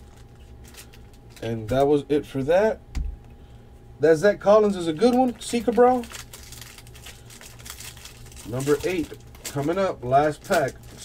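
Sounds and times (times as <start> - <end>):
foil wrapper crinkling and tearing: 0.0 - 2.0, 4.6 - 11.0.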